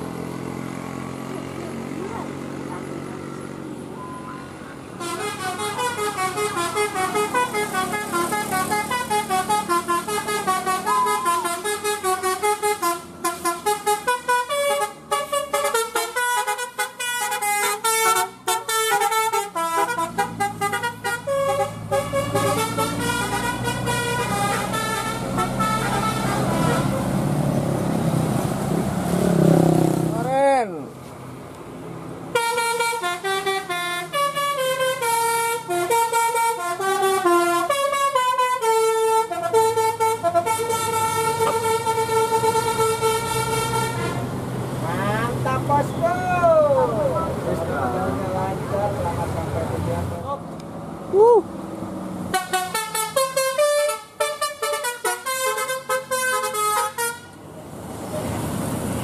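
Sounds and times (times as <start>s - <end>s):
bus engine: 0.0s - 59.0s
traffic noise: 0.0s - 59.0s
bus horn multi-note melody: 5.0s - 27.1s, 32.3s - 44.3s, 52.3s - 57.4s.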